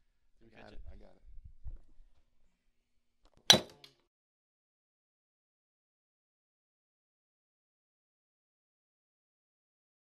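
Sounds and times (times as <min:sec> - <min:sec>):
metal striking cement block: 0:03.5 - 0:03.9.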